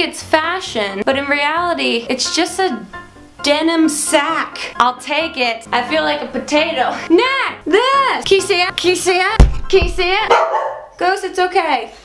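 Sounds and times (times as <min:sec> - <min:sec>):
plastic suitcase thumps: 0:09.4 - 0:10.3
dog barking: 0:10.3 - 0:11.0.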